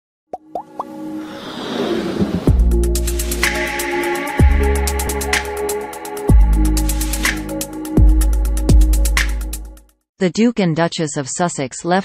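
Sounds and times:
whoosh: 1.1 - 3.5.

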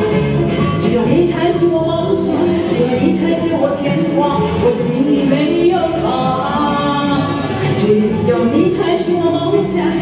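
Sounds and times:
backing music: 0.0 - 10.0
woman singing pop ballad: 0.1 - 10.0.

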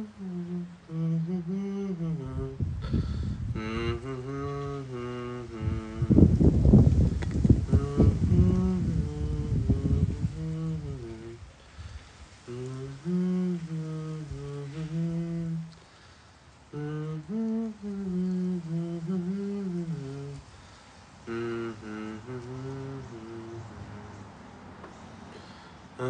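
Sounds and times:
man humming a slow tune: 0.0 - 11.5, 12.4 - 16.0, 16.7 - 20.5, 21.2 - 25.0.

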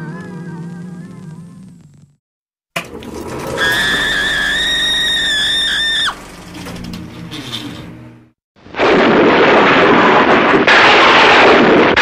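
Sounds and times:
woman screaming: 3.6 - 6.2.

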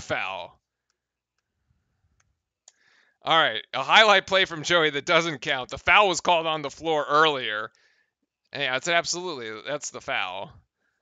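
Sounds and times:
faint clicks: 2.1 - 2.8.

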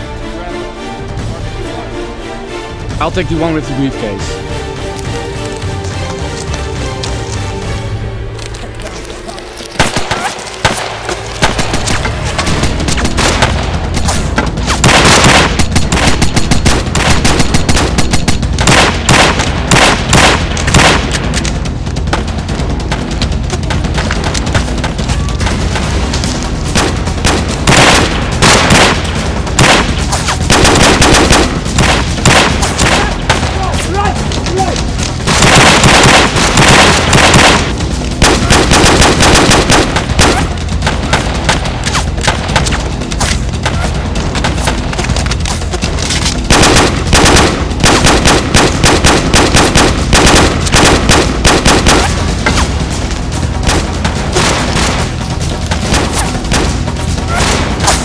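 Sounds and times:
automatic gunfire bursts: 14.8 - 21.1, 26.8 - 33.1, 35.3 - 41.2, 46.5 - 52.1.

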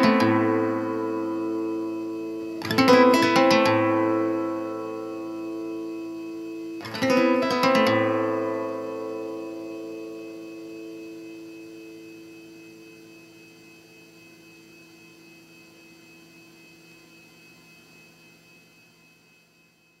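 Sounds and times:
classical guitar chord ringing: 0.0 - 13.1
faint steady hum: 0.0 - 20.0.

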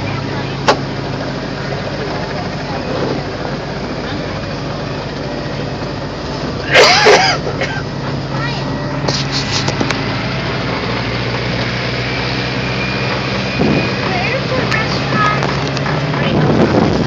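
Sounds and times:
low engine hum: 0.0 - 17.0.

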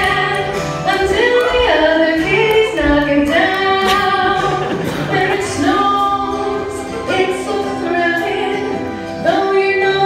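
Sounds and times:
music: 0.0 - 10.0
woman singing: 0.0 - 10.0.

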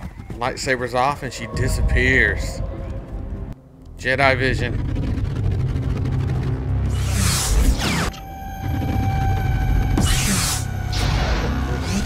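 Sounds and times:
low rumbling drone: 1.0 - 12.0.

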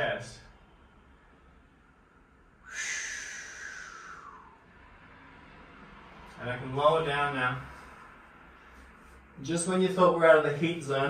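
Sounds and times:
person exhaling: 2.6 - 4.7.

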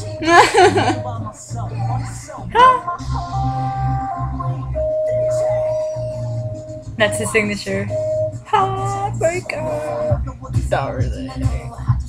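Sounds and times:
electronic pop song: 0.0 - 12.0.

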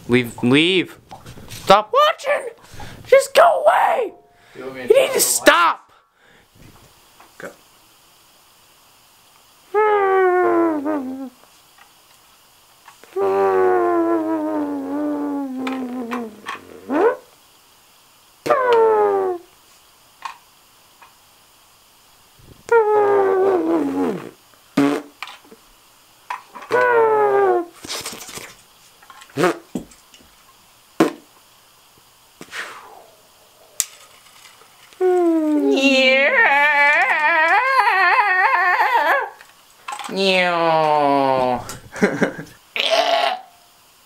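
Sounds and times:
person's high voice warbling: 3.2 - 4.2, 4.9 - 5.8, 9.7 - 11.4, 13.2 - 17.2, 18.5 - 19.5, 22.7 - 23.9, 26.7 - 27.7, 35.0 - 39.4, 40.1 - 41.6
wordless vocal cries: 35.0 - 39.4.

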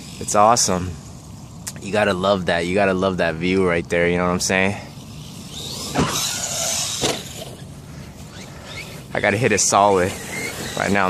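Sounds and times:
electric motor whining: 4.8 - 11.0
rc car knocking on ramp: 5.8 - 7.6.

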